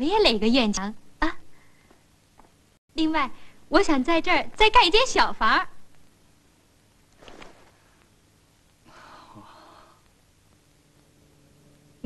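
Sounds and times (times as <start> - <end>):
soundtrack hiss with faint hum: 0.0 - 12.0.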